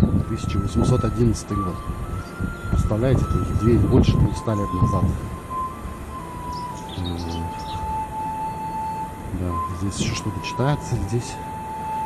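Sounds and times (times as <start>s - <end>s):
birds chirping: 0.0s - 12.0s
soft slow melodic music: 0.0s - 12.0s.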